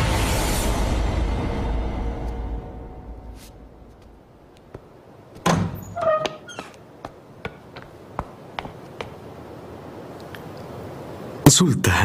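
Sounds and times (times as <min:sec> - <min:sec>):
heavy wooden door banging shut: 0:05.4 - 0:06.5.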